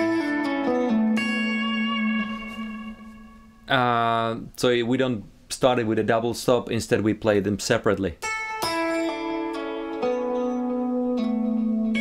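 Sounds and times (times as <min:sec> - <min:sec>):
electric guitar notes ringing: 0:00.0 - 0:03.7, 0:08.2 - 0:12.0.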